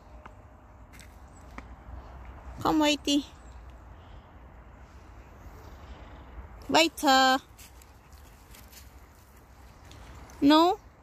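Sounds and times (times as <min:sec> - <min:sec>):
footsteps on frosty grass and leaves: 0:07.4 - 0:10.4.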